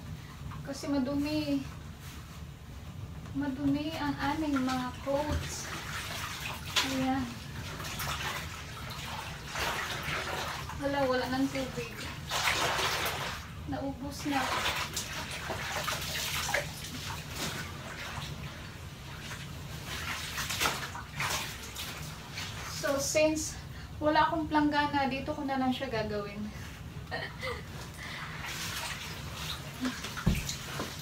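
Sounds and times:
water sloshing in a bathtub: 0:00.0 - 0:31.0.

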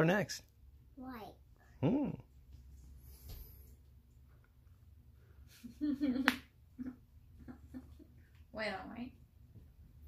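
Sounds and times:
spoken word: 0:01.8 - 0:02.3.

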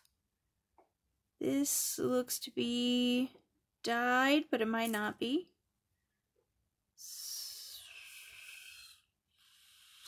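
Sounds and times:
person breathing out with a hiss: 0:07.2 - 0:10.0.

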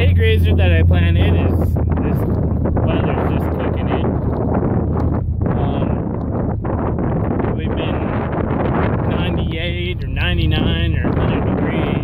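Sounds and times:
engine and road rumble: 0:00.0 - 0:12.0
wind buffeting microphone: 0:00.0 - 0:12.0.

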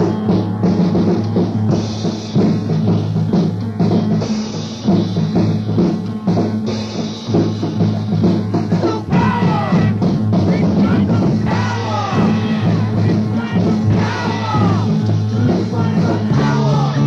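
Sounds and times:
drum kit beat: 0:00.0 - 0:17.0.

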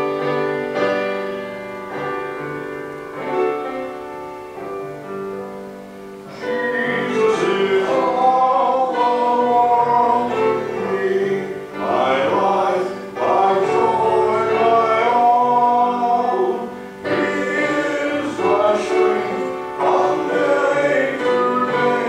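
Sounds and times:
gospel hymn singing: 0:00.0 - 0:22.0
grand piano accompaniment: 0:00.0 - 0:22.0.

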